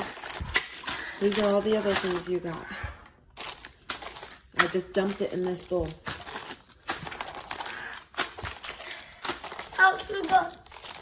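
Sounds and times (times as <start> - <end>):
plastic candy wrappers crinkling: 0.0 - 11.0.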